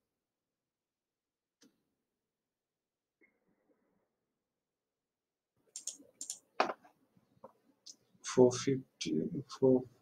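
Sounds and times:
computer mouse clicking: 5.7s - 6.5s.

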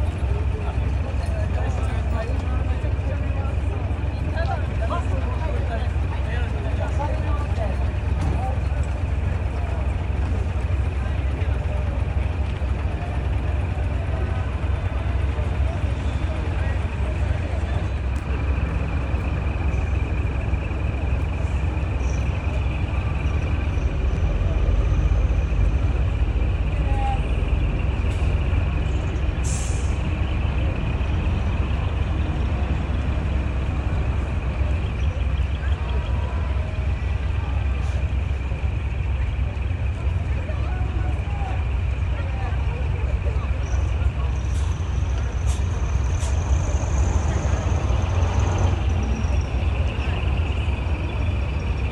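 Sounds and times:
diesel engine rumbling: 0.0s - 51.9s
air brake hiss: 29.4s - 30.1s.

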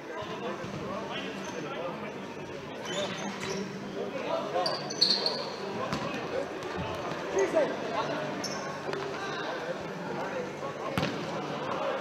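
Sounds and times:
voices of players and spectators: 0.0s - 12.0s
short high squeak: 4.6s - 5.5s
ball kicked and bouncing on court: 5.9s - 7.3s, 11.0s - 11.2s.

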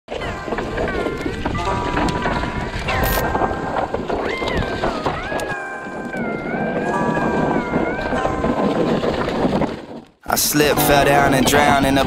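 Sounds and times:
bike rattling clicks and knocks: 0.1s - 10.2s
tyres rumbling on dirt: 0.1s - 12.0s
wind on microphone: 0.2s - 12.0s.

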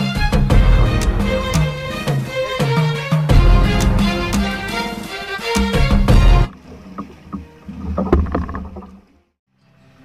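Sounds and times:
intro music: 0.4s - 6.5s
water splashing against boat hull: 3.7s - 9.3s.

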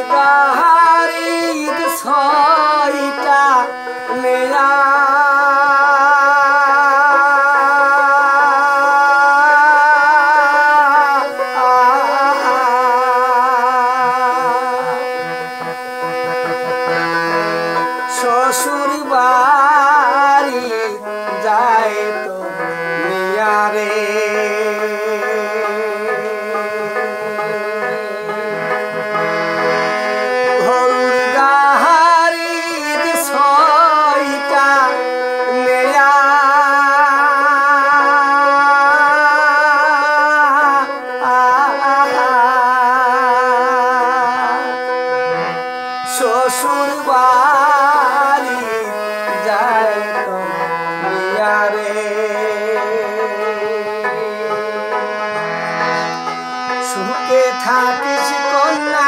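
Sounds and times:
man singing folk song: 0.0s - 45.0s, 46.0s - 59.0s
held instrument notes: 0.0s - 59.0s.

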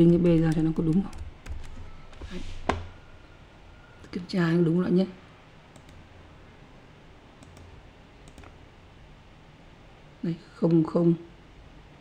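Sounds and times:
low room hum: 0.0s - 12.0s
computer mouse clicks: 5.7s - 6.0s, 7.4s - 8.6s.

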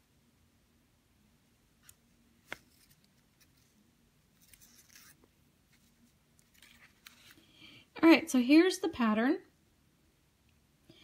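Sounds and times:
thread rustling: 1.8s - 7.5s.

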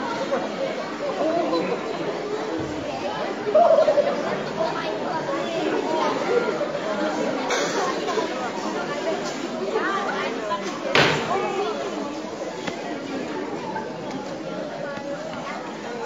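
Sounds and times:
many voices chattering: 0.0s - 16.0s.

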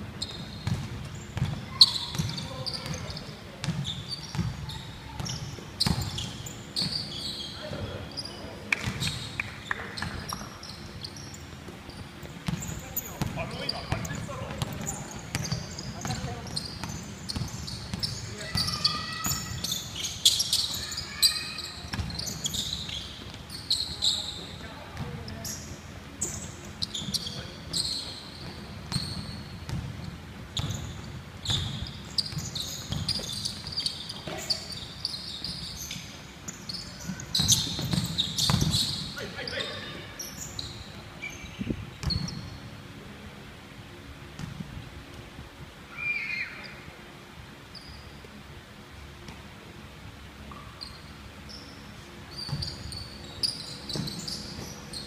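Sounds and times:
sneakers squeaking on wood: 0.2s - 42.7s, 50.5s - 55.0s
basketball bouncing on wood floor: 37.4s - 38.8s.

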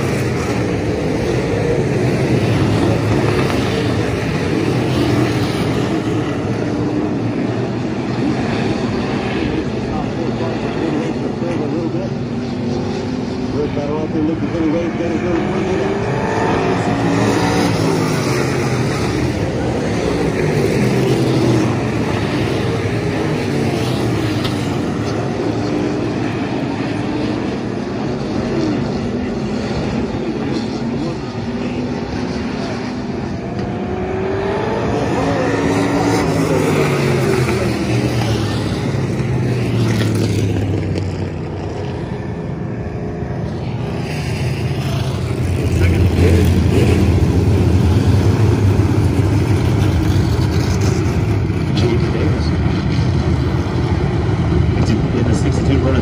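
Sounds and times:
stock car engines passing: 0.0s - 56.0s.

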